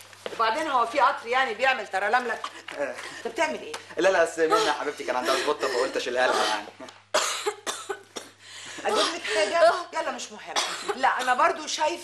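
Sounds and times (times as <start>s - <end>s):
person coughing: 4.5s - 9.9s, 10.6s - 11.4s.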